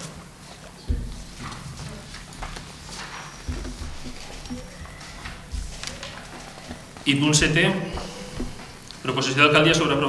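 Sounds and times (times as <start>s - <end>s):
paper shuffling: 0.5s - 9.0s
dull knock on table: 0.9s - 8.8s.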